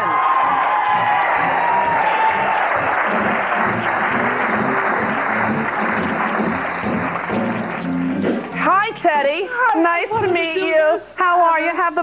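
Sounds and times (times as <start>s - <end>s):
audience applauding and cheering: 0.0s - 9.0s
music playing: 1.0s - 9.1s.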